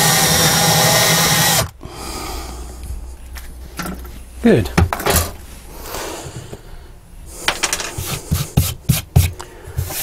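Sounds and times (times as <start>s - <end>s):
hands brushing a board: 7.9s - 10.0s.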